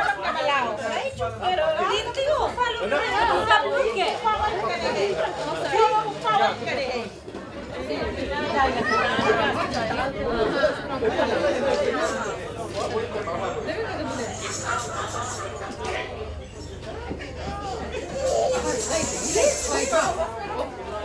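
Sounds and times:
women chattering: 0.0 - 21.0.

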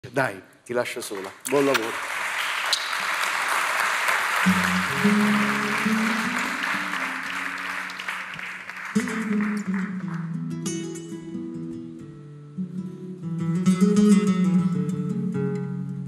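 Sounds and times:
audience applauding: 1.0 - 10.9.

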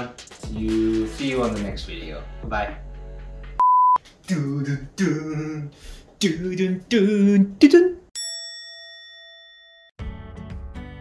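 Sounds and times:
bell-like ding: 8.2 - 10.0.

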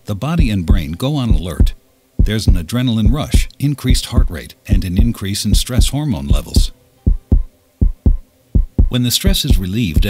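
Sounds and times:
heartbeat thumps: 0.4 - 10.0.

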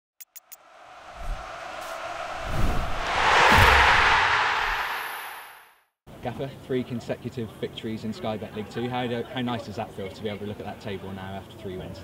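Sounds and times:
whoosh: 0.6 - 5.7
low thuds: 0.8 - 5.5.

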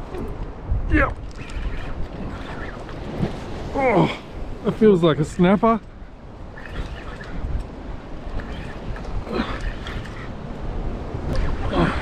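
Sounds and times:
surf washing: 0.0 - 12.0
wind rumbling on microphone: 0.0 - 12.0.

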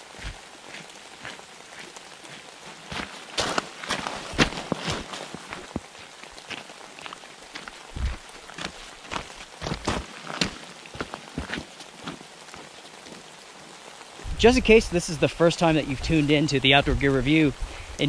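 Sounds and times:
footsteps crunching on gravel: 0.0 - 13.3
rain hiss: 0.0 - 18.0.

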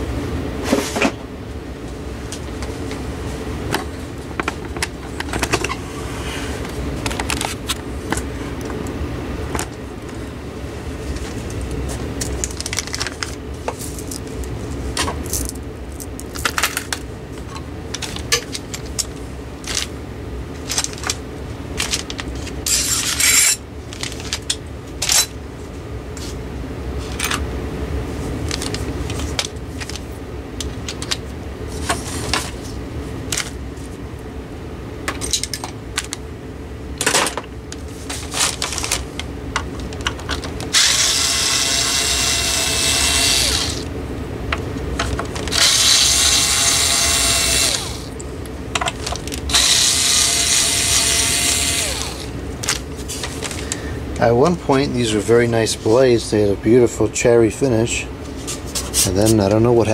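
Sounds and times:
cordless screwdriver whirring: 40.7 - 43.9, 45.5 - 48.1, 49.5 - 52.3.

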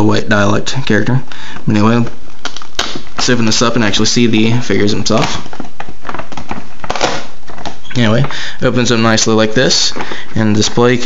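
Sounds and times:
cardboard rustling and scraping: 4.7 - 11.0.

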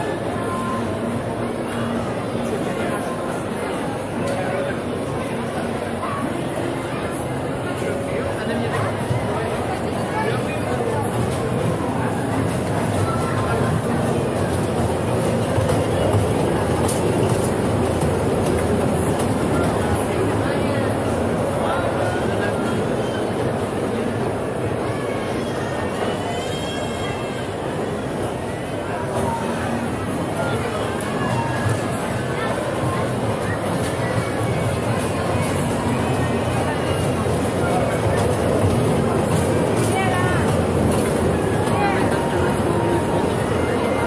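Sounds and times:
carousel rumbling: 0.0 - 44.0
crowd chatter: 0.0 - 44.0
faint music: 0.0 - 44.0
ride-on train running on track: 0.0 - 44.0
children's voices: 24.2 - 27.6.

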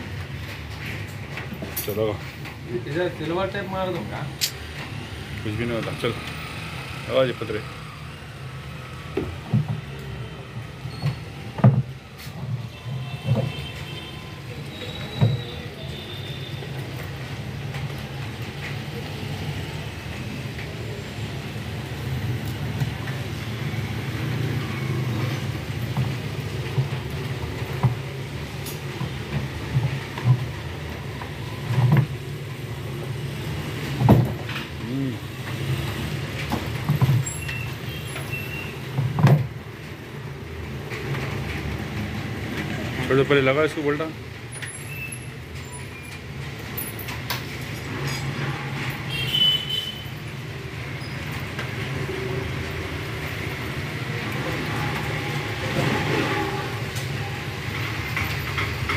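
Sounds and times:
knocks and thumps of plastic panels: 9.2 - 9.9.

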